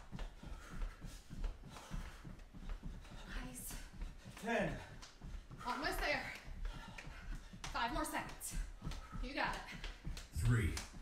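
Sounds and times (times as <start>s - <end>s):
feet thudding on carpet: 0.0s - 11.0s.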